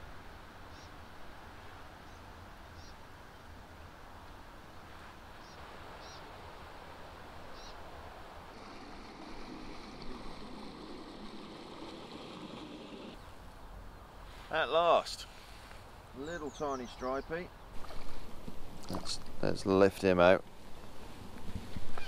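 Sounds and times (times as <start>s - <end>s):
steady outdoor hiss: 0.0s - 22.0s
distant boat engine rumble: 8.5s - 13.2s.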